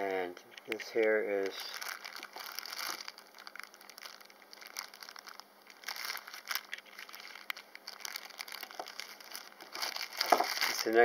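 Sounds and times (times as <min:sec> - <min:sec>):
plastic bag crinkling: 0:00.7 - 0:11.0.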